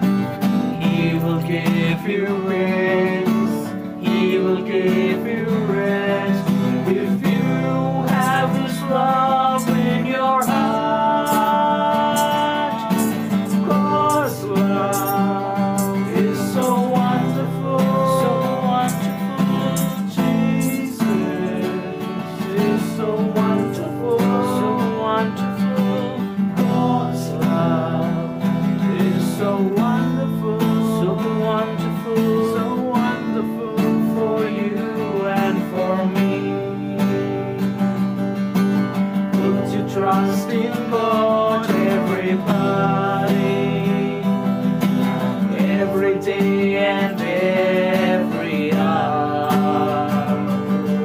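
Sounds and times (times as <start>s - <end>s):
strummed acoustic guitar music: 0.0s - 51.0s.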